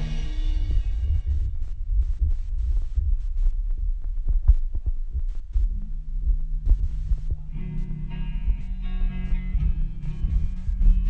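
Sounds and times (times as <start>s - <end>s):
guitar chords: 0.0s - 1.7s, 5.7s - 11.0s
held bass note: 0.0s - 3.4s.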